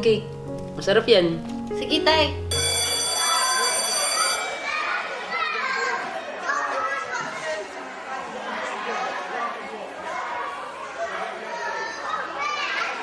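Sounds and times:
children chattering crowd babble: 2.6 - 13.0.

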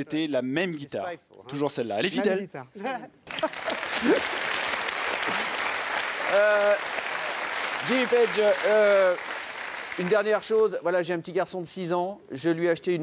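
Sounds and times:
audience applauding: 3.2 - 10.6.

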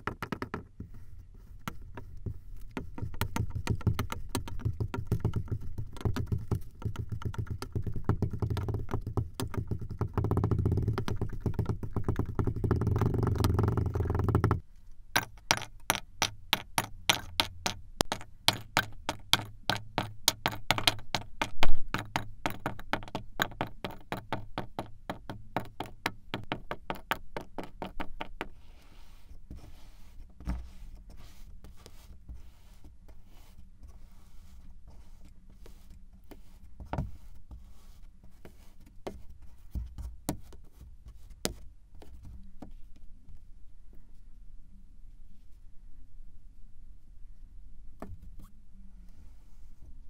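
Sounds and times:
sand cubes tapping into plastic bowl: 0.0 - 0.7, 2.7 - 14.6, 15.2 - 29.2.

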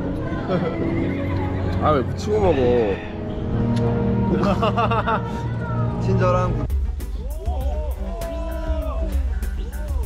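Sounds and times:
man laughing: 4.3 - 5.2.

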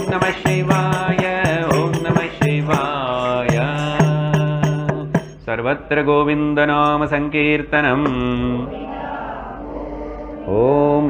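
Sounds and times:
man singing a devotional chant: 0.0 - 8.6.

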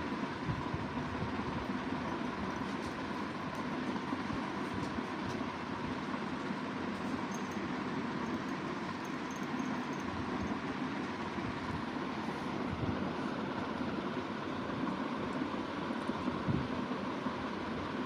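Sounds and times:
faint continuous hum: 0.0 - 18.0.

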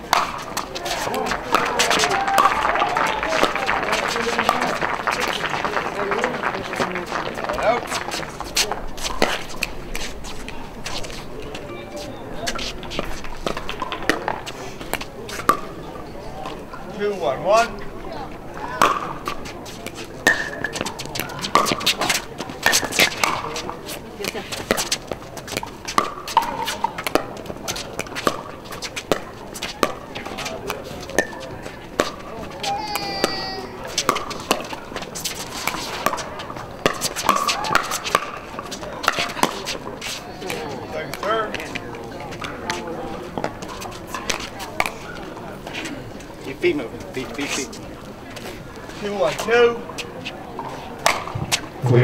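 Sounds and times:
faint voices: 0.0 - 52.0
paddles hitting plastic ball: 0.1 - 5.4, 18.8 - 31.3, 31.9 - 41.8.

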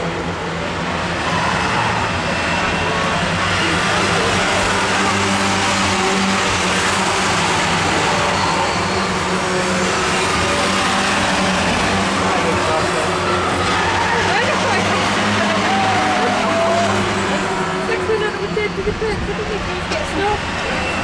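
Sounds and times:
stock car engines racing: 0.0 - 21.0.

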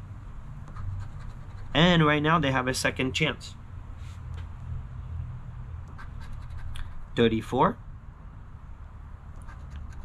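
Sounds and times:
coin scratching lottery ticket: 0.7 - 1.9, 6.0 - 7.2, 9.4 - 10.0.

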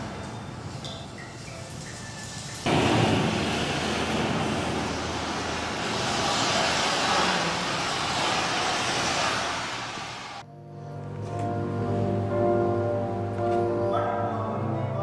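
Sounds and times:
loud steady rushing noise: 1.8 - 10.4.

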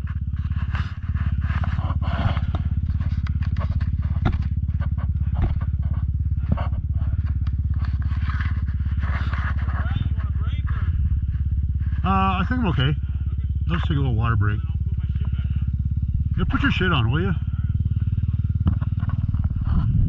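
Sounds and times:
dirt bike engine idling: 0.0 - 20.0
sharp clicks and knocks: 0.6 - 9.5, 18.6 - 19.6.

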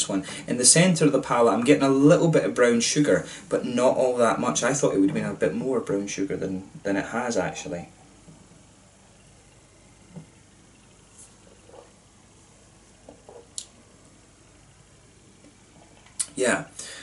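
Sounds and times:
man sipping and swallowing: 15.4 - 16.4.

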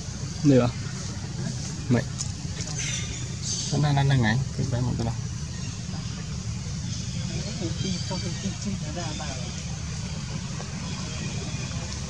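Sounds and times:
steady low rumble: 0.0 - 12.0
faint voices talking: 0.3 - 12.0.

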